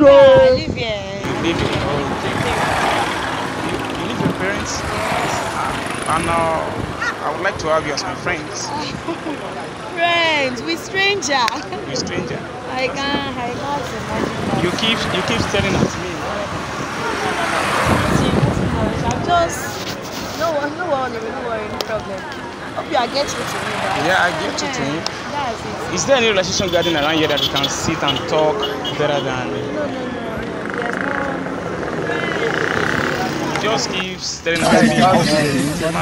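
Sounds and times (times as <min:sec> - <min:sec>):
low voices: 0:00.0 - 0:36.0
motorcycle passing by: 0:01.2 - 0:07.8, 0:13.4 - 0:19.6, 0:22.8 - 0:25.6, 0:29.3 - 0:34.0.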